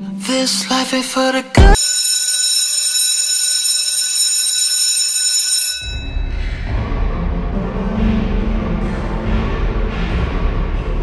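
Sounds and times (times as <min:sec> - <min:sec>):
high-pitched electronic ringing: 0:01.7 - 0:06.2.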